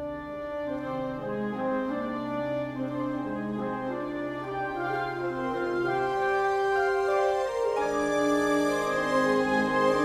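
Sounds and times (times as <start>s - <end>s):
orchestral wind melody: 0.0s - 10.0s.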